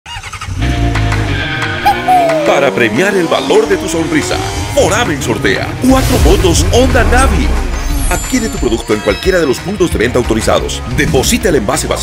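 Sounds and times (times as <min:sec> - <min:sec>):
music playing: 0:00.6 - 0:12.0.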